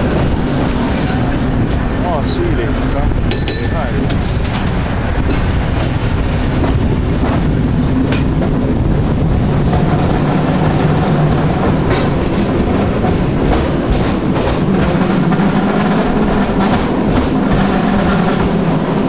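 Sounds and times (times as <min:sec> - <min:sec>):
cable car rumbling on rails: 0:00.0 - 0:19.0
clacks: 0:03.3 - 0:08.6, 0:09.6 - 0:19.0.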